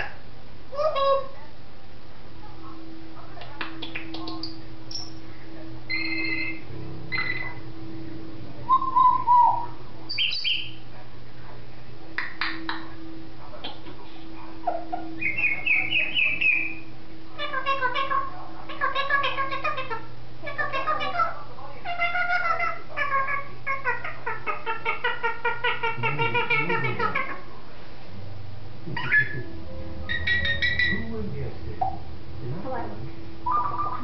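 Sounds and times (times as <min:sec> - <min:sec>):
parrot calling: 0:00.0 - 0:01.4, 0:03.8 - 0:05.2, 0:05.9 - 0:07.7, 0:08.6 - 0:10.8, 0:13.6 - 0:27.6, 0:28.8 - 0:32.1, 0:33.4 - 0:34.0.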